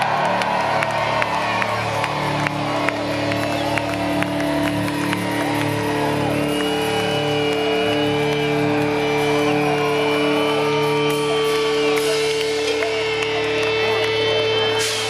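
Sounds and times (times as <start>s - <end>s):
audience whooping and cheering: 0.0s - 15.0s.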